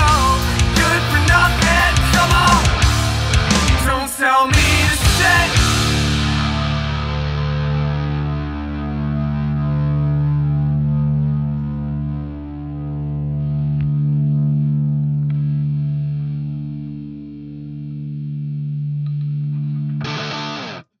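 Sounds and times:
bass: 0:00.0 - 0:20.2
distorted electric guitar chord: 0:00.0 - 0:20.9.

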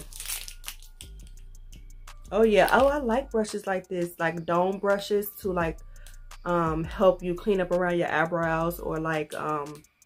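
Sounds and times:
plastic sleeve crinkling: 0:00.0 - 0:01.2.

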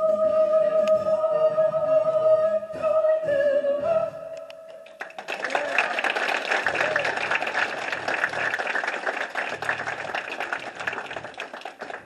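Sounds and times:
audience clapping: 0:04.9 - 0:12.0.

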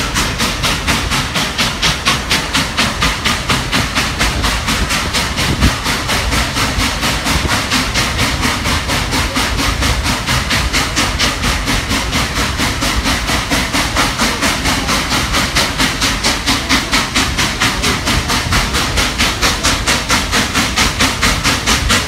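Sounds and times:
steam hiss: 0:00.0 - 0:22.0
steam locomotive chuffing: 0:00.0 - 0:22.0.

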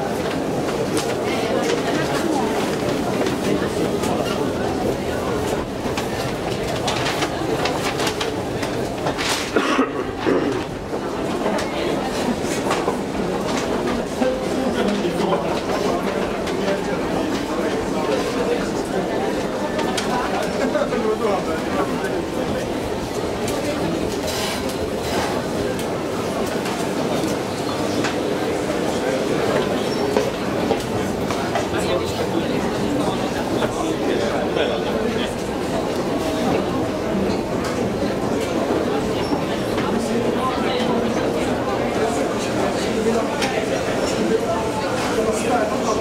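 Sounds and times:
chatter of people: 0:00.0 - 0:46.0.

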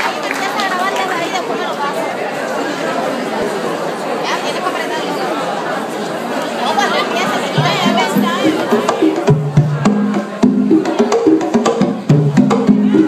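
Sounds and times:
crowd chattering: 0:00.0 - 0:13.0.

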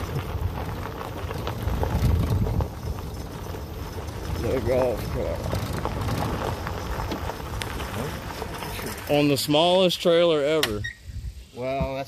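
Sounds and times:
tyres crunching on gravel: 0:00.0 - 0:10.7.

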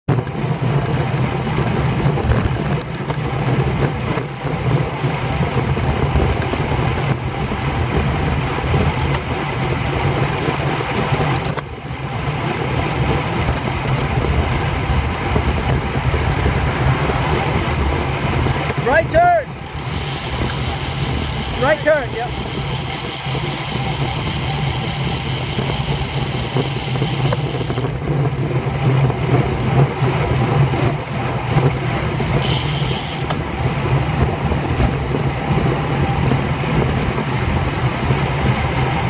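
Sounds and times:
bicycle tyres rolling on road: 0:00.1 - 0:39.0
wind rushing over microphone: 0:00.1 - 0:39.0.

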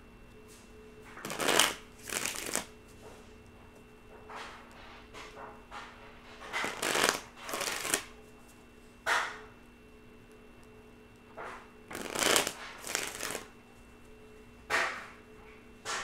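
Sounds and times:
faint steady hum: 0:00.0 - 0:16.0
cards being shuffled: 0:01.2 - 0:02.7, 0:06.6 - 0:08.1, 0:11.9 - 0:13.5.

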